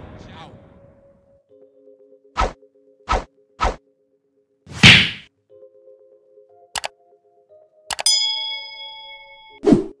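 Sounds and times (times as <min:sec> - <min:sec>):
bell ding: 0:07.9 - 0:09.6.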